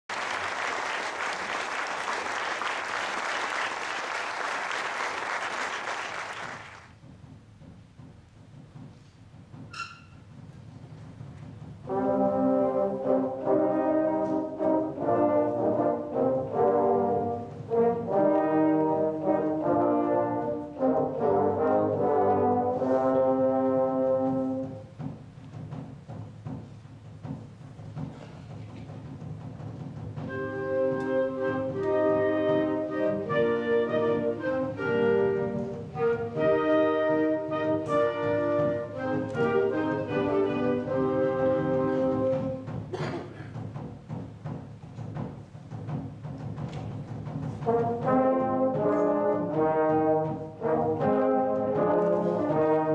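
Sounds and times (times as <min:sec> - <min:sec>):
concert wind band playing: 0:09.5 - 0:26.2, 0:28.0 - 0:43.1, 0:47.1 - 0:52.9.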